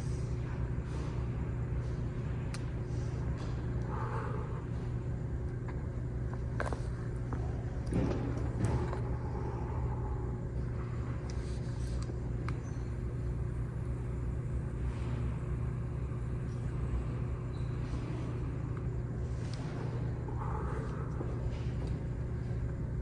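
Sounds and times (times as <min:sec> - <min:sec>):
ventilation rumble and hum: 0:00.0 - 0:23.0.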